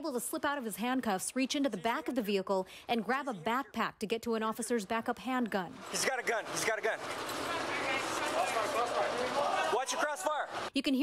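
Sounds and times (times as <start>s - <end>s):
distant shouting voices: 5.8s - 10.7s.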